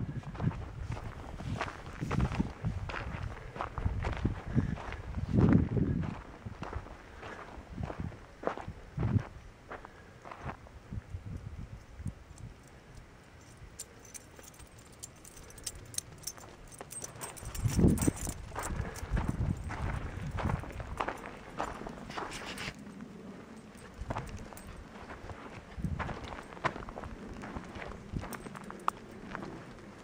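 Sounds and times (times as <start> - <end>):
footsteps on sandy dirt trail: 0.0 - 11.0, 14.4 - 30.0.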